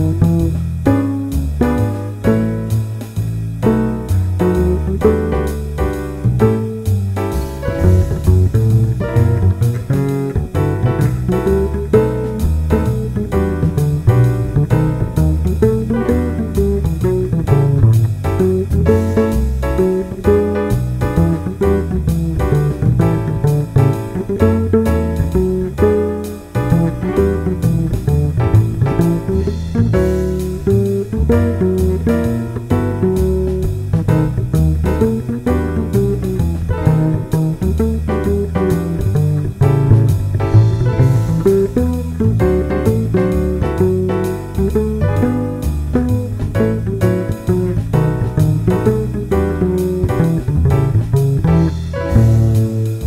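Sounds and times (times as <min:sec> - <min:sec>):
moving bass line: 0:00.0 - 0:53.0
plucked guitar notes: 0:00.0 - 0:53.0.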